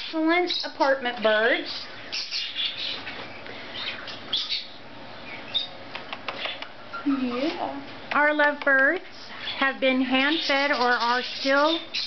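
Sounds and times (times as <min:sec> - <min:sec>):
lovebirds chirping: 0:00.0 - 0:08.4, 0:09.3 - 0:12.0.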